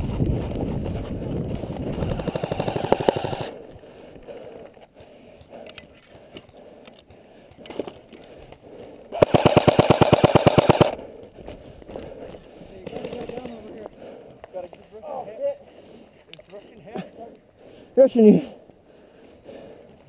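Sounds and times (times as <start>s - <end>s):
airsoft gun full-auto bursts: 2.0s - 3.6s, 9.2s - 11.0s.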